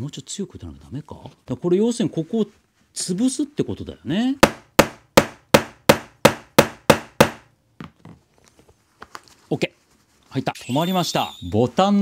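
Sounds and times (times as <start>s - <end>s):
hammer striking metal tool: 4.4s - 7.5s.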